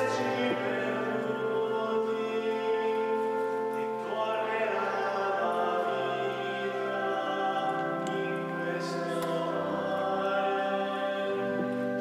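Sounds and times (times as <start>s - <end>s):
hymn sung with instruments: 0.0s - 12.0s.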